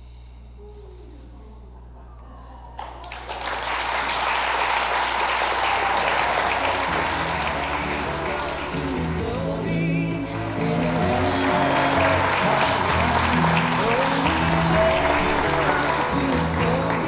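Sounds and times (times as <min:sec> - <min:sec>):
audience applauding: 0:02.8 - 0:17.0
music: 0:05.2 - 0:17.0.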